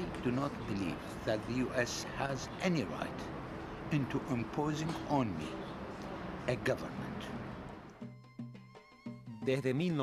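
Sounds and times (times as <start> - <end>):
instrumental music with held notes: 7.7 - 10.0.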